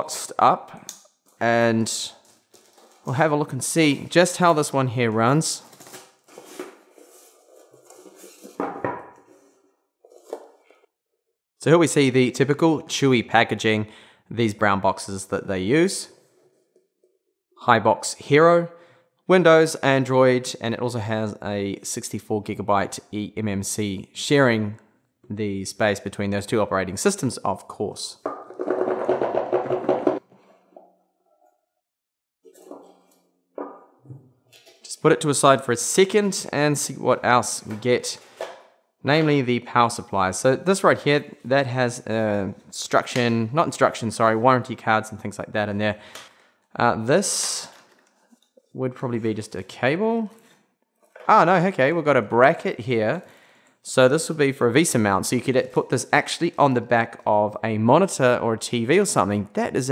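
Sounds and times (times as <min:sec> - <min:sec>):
cardboard boxes scraping: 0:06.3 - 0:08.6.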